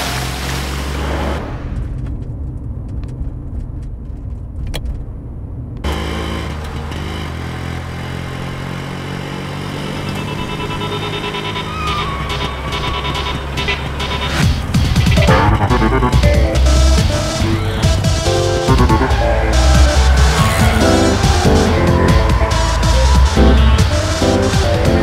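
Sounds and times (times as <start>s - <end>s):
car engine rumble: 0.0s - 25.0s
film score music with heavy bass: 10.4s - 25.0s.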